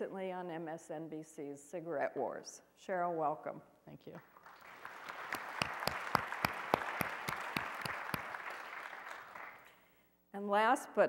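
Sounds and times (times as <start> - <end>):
audience applauding: 4.4 - 9.7.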